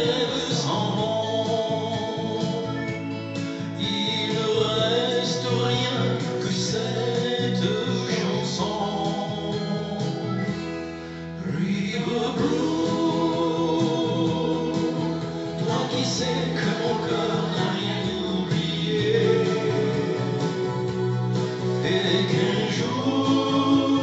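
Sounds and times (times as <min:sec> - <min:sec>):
man singing into a microphone: 0:00.0 - 0:03.0, 0:03.6 - 0:10.4, 0:11.4 - 0:20.9, 0:21.5 - 0:24.0
instrumental backing track: 0:00.0 - 0:24.0.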